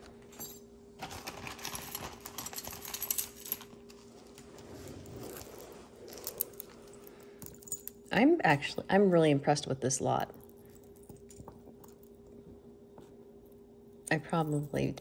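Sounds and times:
metal jewelry chains clinking: 0.0s - 8.2s, 10.3s - 12.3s.

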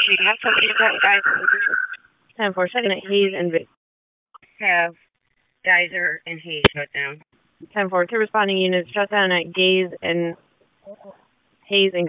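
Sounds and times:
man's voice over radio: 0.0s - 1.8s
noisy radio transmission: 0.0s - 2.0s.

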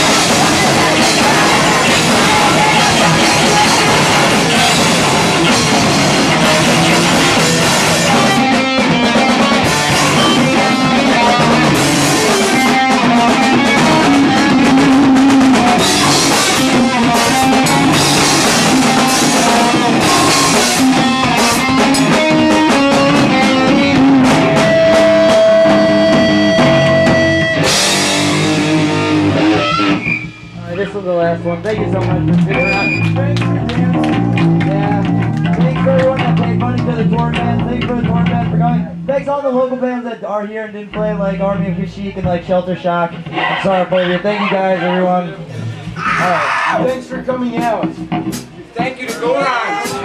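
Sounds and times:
rock band playing live: 0.0s - 39.7s, 40.8s - 50.0s.

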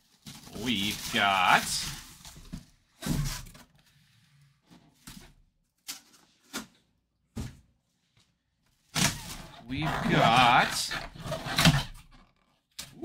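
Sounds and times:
plastic bag rustling: 0.0s - 2.6s.

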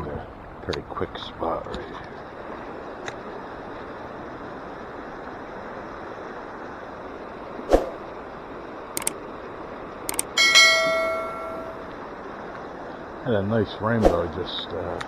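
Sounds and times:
sharp clicks: 9.0s - 9.2s, 10.1s - 10.4s
bell chime: 10.4s - 11.9s.

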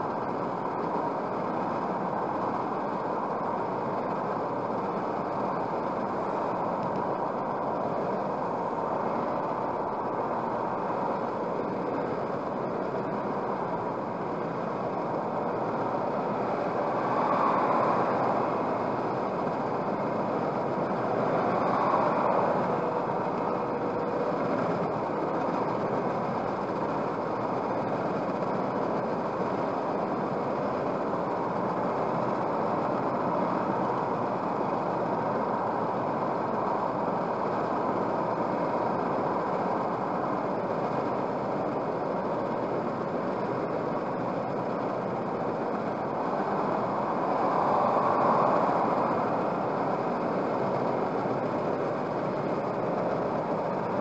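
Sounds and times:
car cabin road noise: 0.0s - 54.0s.

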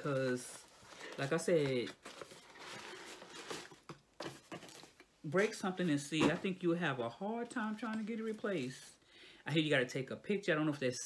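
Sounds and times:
cardboard box handling: 0.0s - 6.6s
paper packing rustling: 0.0s - 6.8s.

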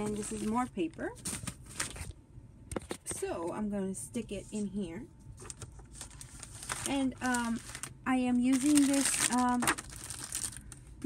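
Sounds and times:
paper rustling: 0.0s - 2.1s, 5.4s - 10.8s.

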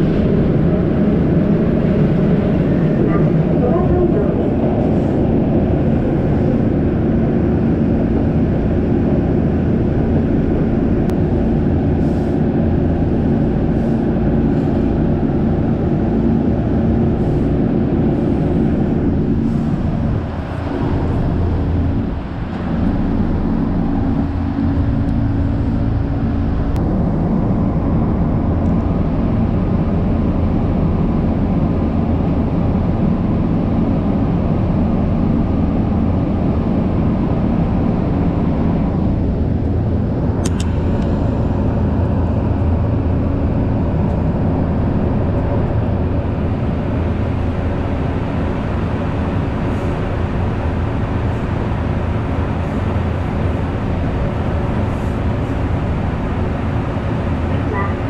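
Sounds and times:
low motor hum: 0.0s - 58.0s.

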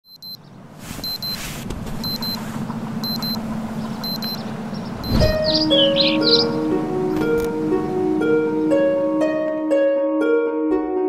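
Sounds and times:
alarm clock beeping: 0.1s - 0.4s, 1.0s - 1.4s, 2.0s - 2.4s, 3.0s - 3.4s, 4.0s - 4.4s, 5.0s - 6.3s.

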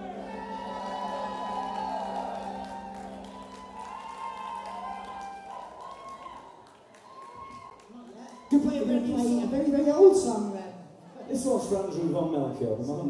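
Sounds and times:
audience cheering: 0.0s - 9.8s.

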